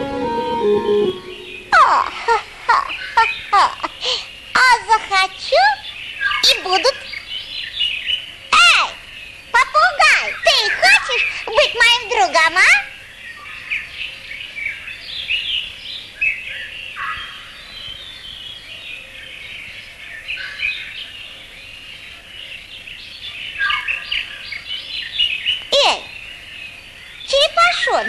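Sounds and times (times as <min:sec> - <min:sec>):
falling pitch sweep: 0:00.0 - 0:02.0
small birds chirping: 0:00.0 - 0:28.0.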